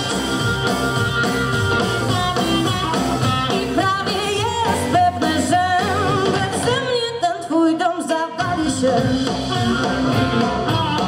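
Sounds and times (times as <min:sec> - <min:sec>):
harmonica solo: 0:00.0 - 0:04.3, 0:09.4 - 0:11.0
blues-rock band playing: 0:00.0 - 0:07.5, 0:08.3 - 0:11.0.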